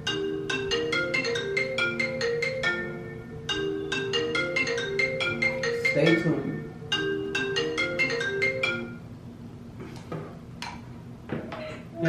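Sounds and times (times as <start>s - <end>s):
marimba-like mallet percussion tune: 0.0s - 9.0s.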